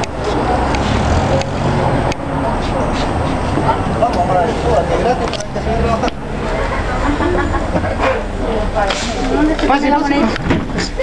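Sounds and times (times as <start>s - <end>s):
vehicle rumble: 0.0s - 11.0s.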